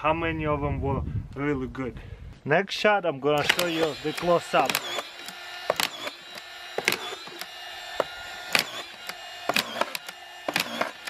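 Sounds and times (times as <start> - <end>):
cordless screwdriver motor whine: 3.4 - 11.0
screw feeder clacking: 3.4 - 11.0.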